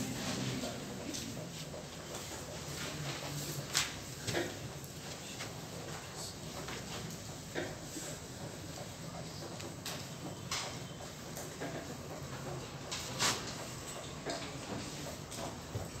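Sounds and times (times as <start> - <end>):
room hum: 0.0 - 16.0.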